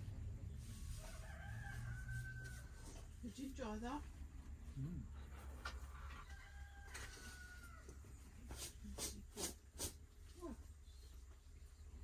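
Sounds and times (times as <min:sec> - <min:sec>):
rooster crowing faintly: 0:00.8 - 0:03.2, 0:05.8 - 0:08.2.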